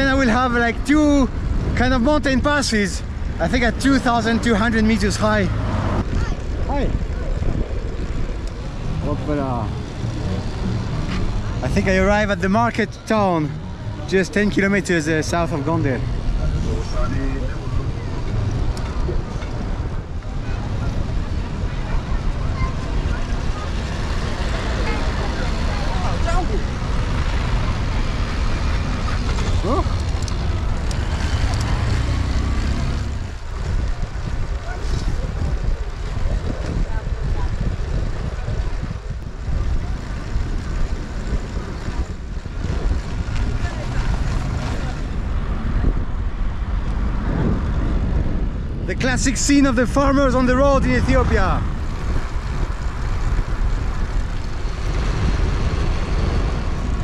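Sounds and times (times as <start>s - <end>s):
people's voices: 0.0s - 47.4s
wind and road noise: 0.0s - 57.0s.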